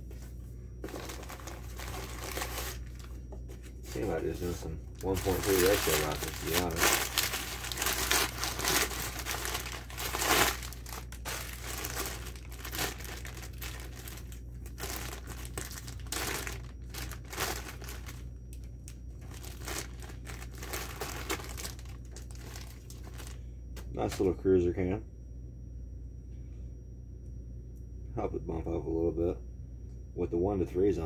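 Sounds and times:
packing paper crumpling: 0:00.8 - 0:03.2, 0:03.8 - 0:23.4
plastic bag crinkling: 0:00.8 - 0:03.2, 0:03.9 - 0:23.4.

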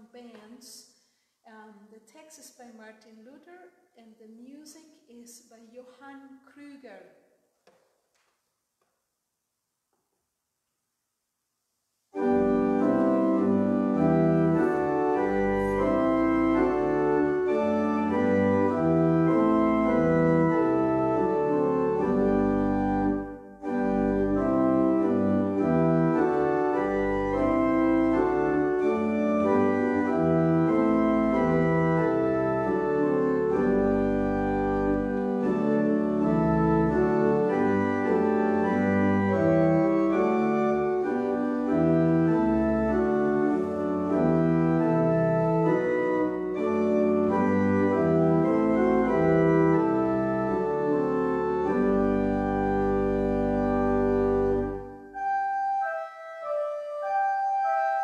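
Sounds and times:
organ playing held chords: 0:12.1 - 0:58.0.

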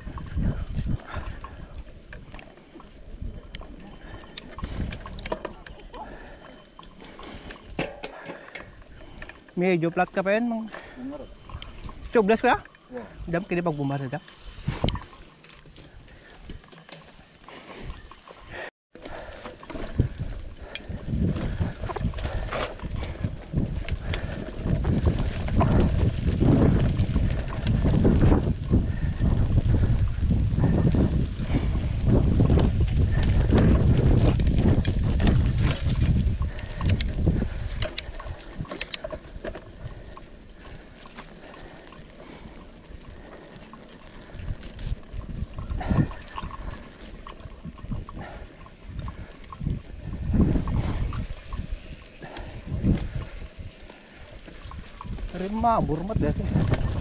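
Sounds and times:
deep rumbling wind noise: 0:00.0 - 0:05.4, 0:19.2 - 0:57.0
bike clattering over bumps: 0:19.0 - 0:57.0.

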